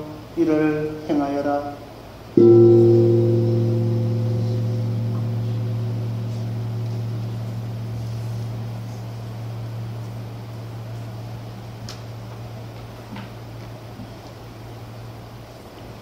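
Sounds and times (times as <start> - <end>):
deep bell tone ringing: 2.4 - 13.9.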